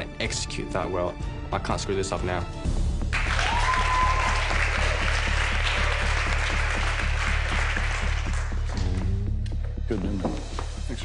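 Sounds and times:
music with steady beat: 2.4s - 11.0s
group applauding: 3.1s - 9.1s
high-pitched whoop: 3.3s - 5.1s.

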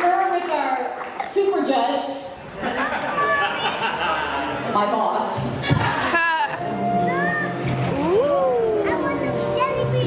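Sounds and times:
background music: 5.5s - 10.0s.

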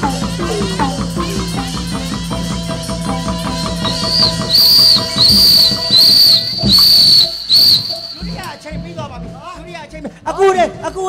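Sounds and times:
shrill whistle blasts: 3.8s - 9.0s.

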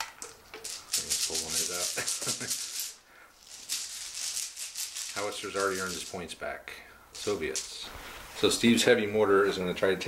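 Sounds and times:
plastic dice rattling in a bag: 0.2s - 6.2s.

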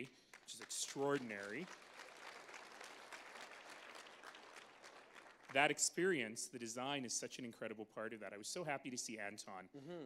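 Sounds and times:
audience applause: 0.5s - 5.8s.

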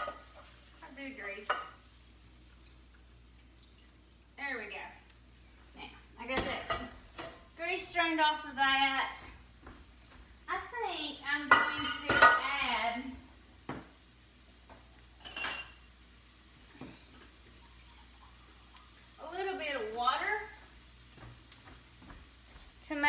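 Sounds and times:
metal skillet and spoon clattering: 15.2s - 15.9s.

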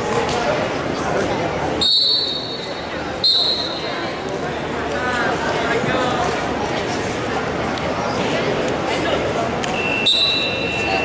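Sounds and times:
crowd chatter: 0.0s - 11.0s
referee's whistle blast: 3.2s - 3.8s, 9.8s - 11.0s.

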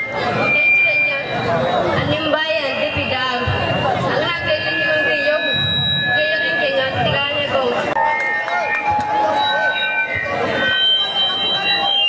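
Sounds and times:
ringing tones from sound system: 0.0s - 12.0s.

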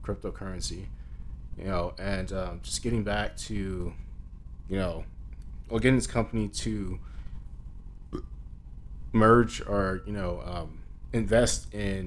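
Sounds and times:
man speaking: 0.0s - 0.9s, 1.6s - 4.0s, 4.7s - 5.1s, 5.7s - 7.0s, 9.2s - 12.0s
low steady hum: 0.0s - 12.0s.

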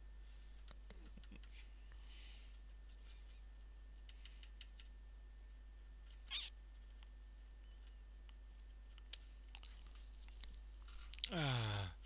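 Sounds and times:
faint clicks of small parts: 4.0s - 5.0s.

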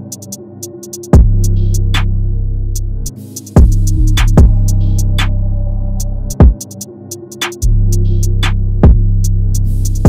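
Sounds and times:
hi-hat ticks: 0.0s - 2.0s, 3.3s - 5.3s, 6.3s - 10.0s
kick drum with falling pitch: 1.2s - 1.4s, 3.6s - 4.6s, 8.8s - 9.1s
sustained bass: 1.2s - 6.5s, 7.6s - 10.0s.

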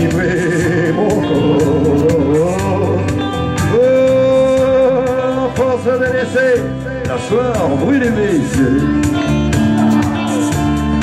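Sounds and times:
guitar backing: 0.0s - 11.0s.

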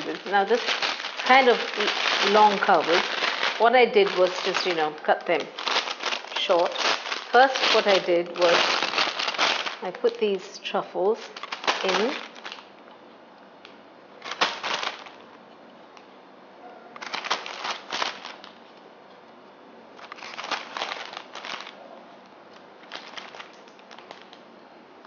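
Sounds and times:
plastic bag crinkling: 0.0s - 12.7s, 14.2s - 15.2s, 17.0s - 18.6s, 20.0s - 24.4s.

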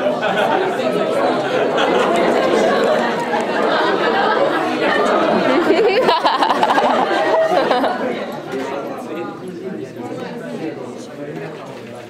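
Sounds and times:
students chattering: 0.0s - 12.0s.

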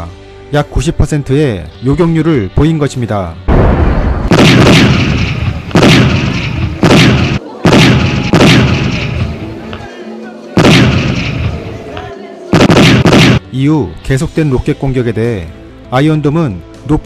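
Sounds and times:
loud missile booms: 3.5s - 9.4s, 10.6s - 11.8s, 12.6s - 13.4s.

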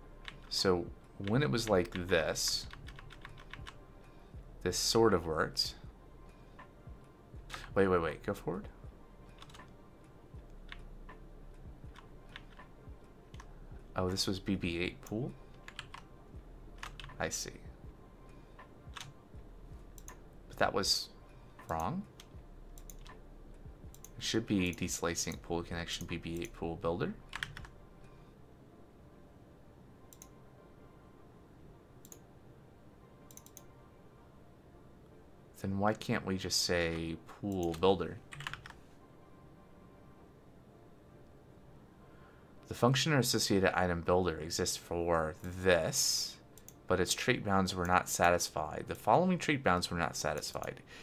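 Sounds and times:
computer keyboard keystrokes: 1.2s - 3.8s, 9.4s - 9.7s, 15.6s - 16.0s, 18.9s - 19.1s, 21.7s - 23.2s, 27.3s - 27.7s, 33.3s - 33.7s, 37.5s - 38.8s.

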